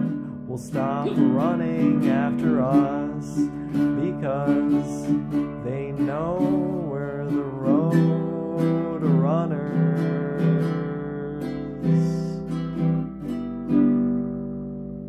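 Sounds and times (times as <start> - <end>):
acoustic guitar strumming chords: 0.0 - 15.0.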